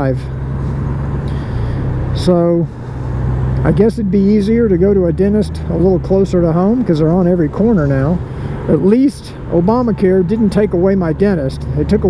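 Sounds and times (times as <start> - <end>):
motorcycle engine droning: 0.0 - 12.0
road and wind noise: 0.0 - 12.0.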